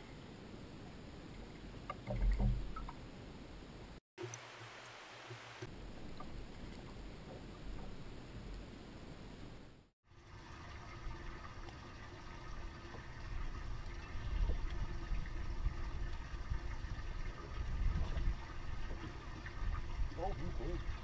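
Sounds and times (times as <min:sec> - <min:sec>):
faint steady hum: 0:00.0 - 0:21.0
water lapping at hull: 0:00.8 - 0:03.1, 0:05.6 - 0:09.3, 0:10.0 - 0:21.0.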